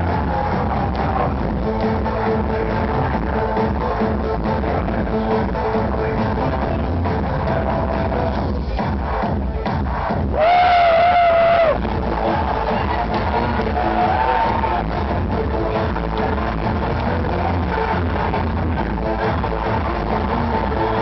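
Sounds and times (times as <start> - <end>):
loud electronic dance music: 0.0 - 21.0.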